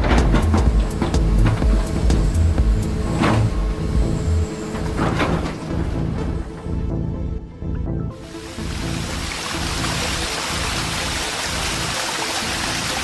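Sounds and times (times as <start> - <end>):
heavy construction machinery: 0.0 - 7.1
background music with pulsing bass: 0.0 - 13.0.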